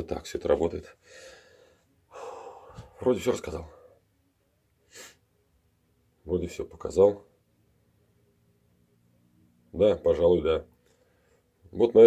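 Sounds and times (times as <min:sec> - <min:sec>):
man breathing: 0:01.0 - 0:03.0.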